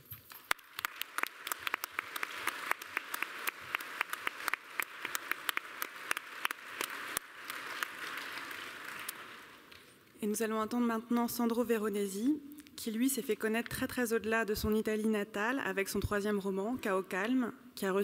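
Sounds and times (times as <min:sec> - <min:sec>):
audience applauding: 0:00.3 - 0:09.8.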